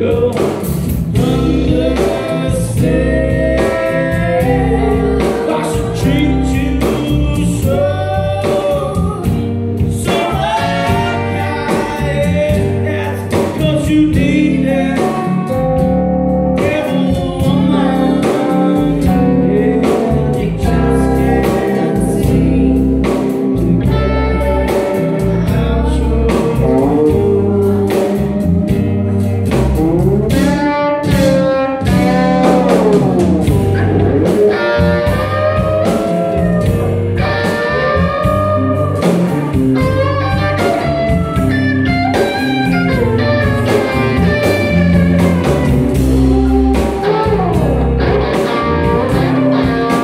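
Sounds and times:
live rock band playing: 0.0 - 50.0
woman singing: 1.2 - 9.4, 16.8 - 23.3.

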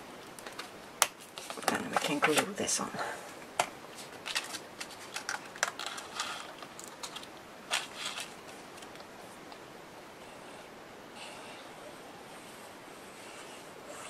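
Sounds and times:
paper rustling: 0.4 - 2.6, 3.9 - 9.1.

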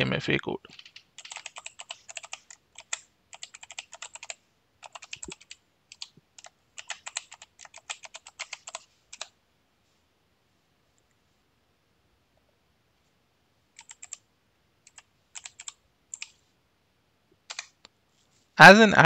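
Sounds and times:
typing on computer keyboard: 0.7 - 9.4, 13.8 - 14.2, 14.8 - 16.4, 17.5 - 17.8.

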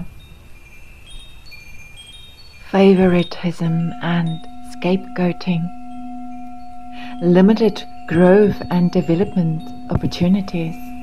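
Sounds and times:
soft chimes ringing: 0.0 - 11.0.

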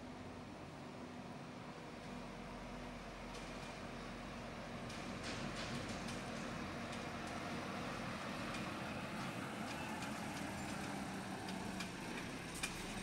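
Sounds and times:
road noise: 0.0 - 13.0.

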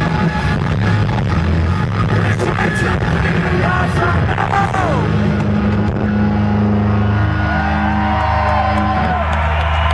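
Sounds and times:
rock band sustained chord: 0.0 - 9.5.

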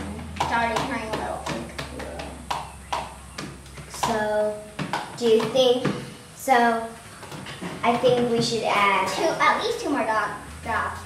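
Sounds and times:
low hum: 0.0 - 3.9.

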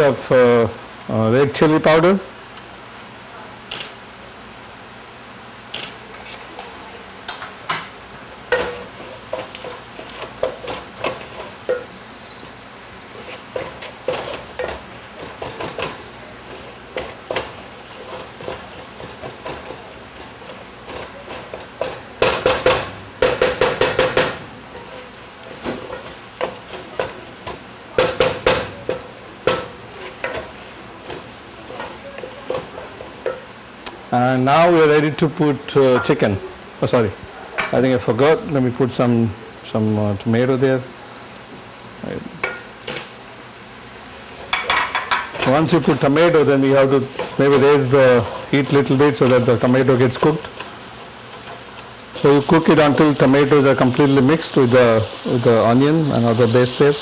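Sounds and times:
onions sizzling: 0.0 - 57.0
wooden spoon scraping pot: 45.3 - 50.7.

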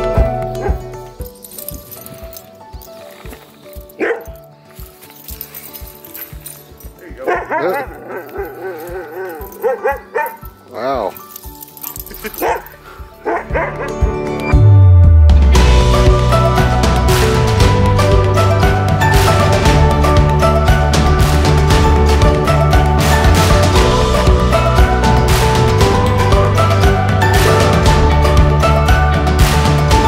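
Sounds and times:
background music: 0.0 - 30.0
dogs yipping: 0.1 - 14.1
dogs yowling: 3.9 - 4.4, 7.2 - 14.0.

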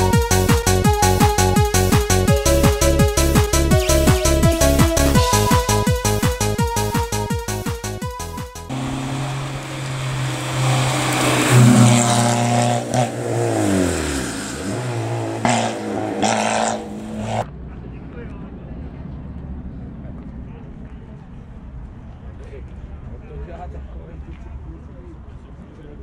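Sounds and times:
faint outdoor ambience: 8.6 - 26.0
car engine revving hard: 8.7 - 17.5.

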